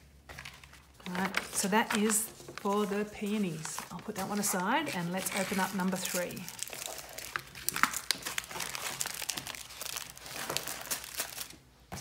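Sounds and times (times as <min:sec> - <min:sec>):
plastic and paper crinkling: 0:00.2 - 0:12.0.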